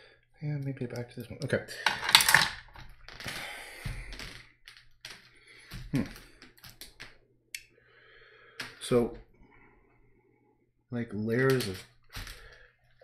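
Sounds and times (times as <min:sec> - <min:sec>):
paintbrushes clattering: 0:01.8 - 0:05.3.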